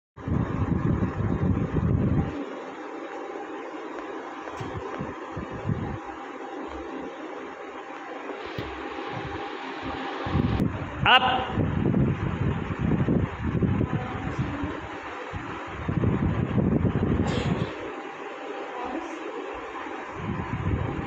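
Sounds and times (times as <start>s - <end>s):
wind buffeting microphone: 0.2s - 2.4s, 4.6s - 6.1s, 8.6s - 17.8s, 20.2s - 21.0s
faint hum: 0.2s - 21.0s
steady hiss: 8.2s - 11.0s.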